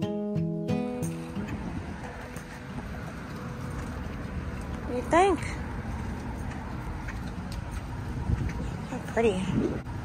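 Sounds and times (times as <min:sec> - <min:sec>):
wind buffeting microphone: 0:01.2 - 0:10.0.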